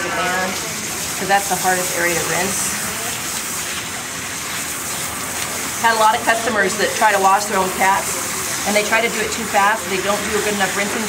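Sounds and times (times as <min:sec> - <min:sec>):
water splashing into metal tub: 0:00.0 - 0:11.0
water spraying onto wet fur: 0:00.0 - 0:11.0.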